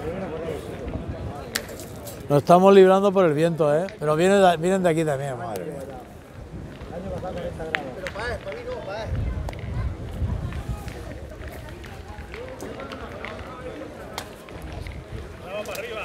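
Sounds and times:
wind on microphone: 0.0 - 2.6, 5.9 - 16.0
players and spectators chatter: 0.0 - 16.0.

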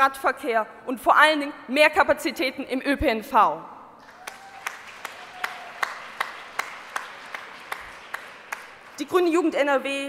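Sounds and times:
audience applauding: 4.0 - 9.5.

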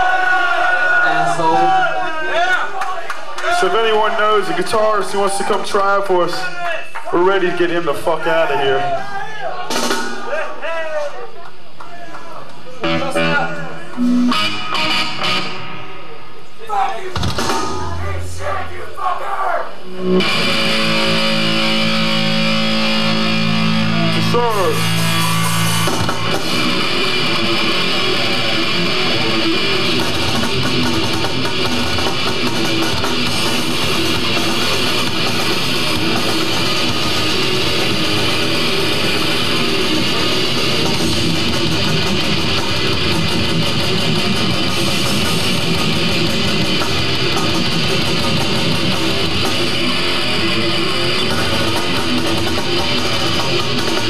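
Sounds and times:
rapid drumming: 9.6 - 10.6, 17.0 - 18.6, 22.8 - 54.0
electric guitar chord: 12.8 - 16.4, 19.9 - 54.0.

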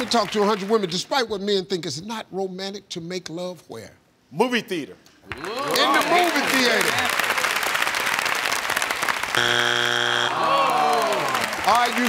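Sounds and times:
contestants clapping: 0.0 - 1.0, 5.3 - 12.0
game show strike buzzer: 9.4 - 10.4.

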